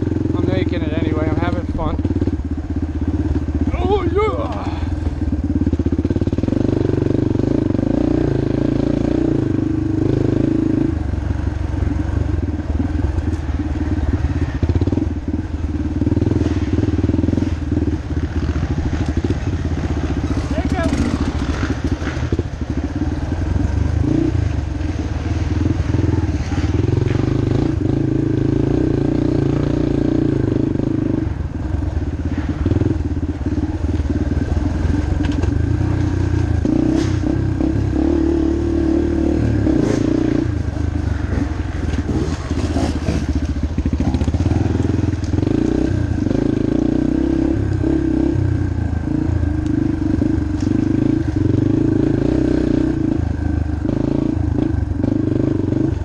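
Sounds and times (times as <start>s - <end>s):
dirt bike engine revving: 13.5s - 31.5s, 32.2s - 56.0s.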